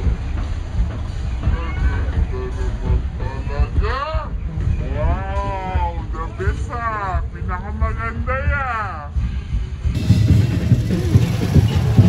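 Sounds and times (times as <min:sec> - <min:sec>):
dense low thumping: 0:00.0 - 0:12.0.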